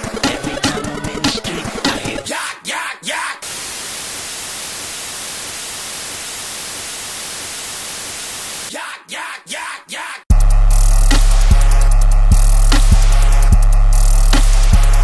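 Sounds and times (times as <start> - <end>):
static hiss: 3.4 - 8.7.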